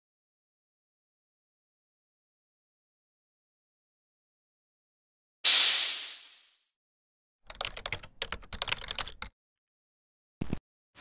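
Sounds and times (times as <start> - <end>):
keyboard typing clicks: 7.5 - 9.3.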